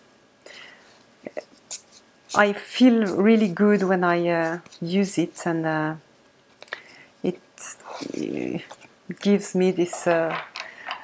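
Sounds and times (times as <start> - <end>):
breath: 0.4 - 1.0, 6.6 - 7.2.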